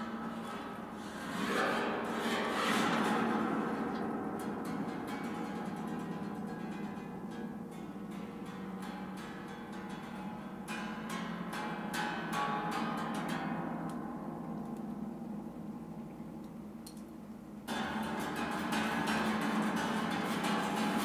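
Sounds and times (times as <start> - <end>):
plucked strings: 17.7 - 21.0.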